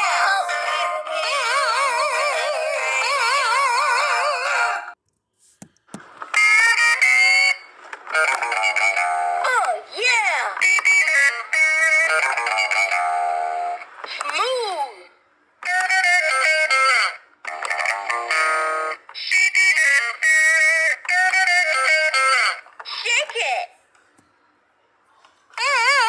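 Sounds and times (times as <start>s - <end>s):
toy guitar electronic music clips: 5.8s - 14.7s, 15.6s - 23.4s.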